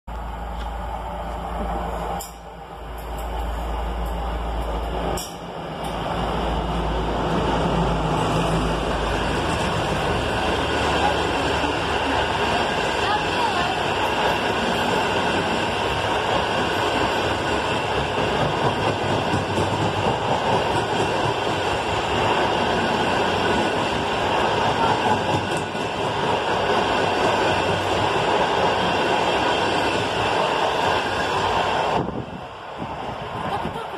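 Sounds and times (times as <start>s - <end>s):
diesel locomotive engine rumble: 0.1s - 33.9s
train wheels rolling on rails: 0.1s - 33.9s.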